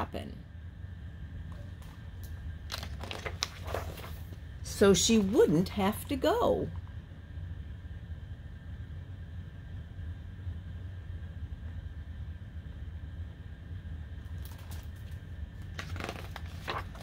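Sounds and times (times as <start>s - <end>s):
low room hum: 0.0s - 17.0s
paper page rustling: 2.7s - 4.4s, 5.0s - 5.6s, 14.4s - 17.0s.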